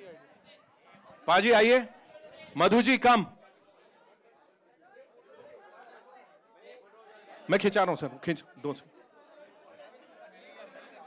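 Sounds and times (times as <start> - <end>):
faint chatter of voices: 0.0 - 11.0.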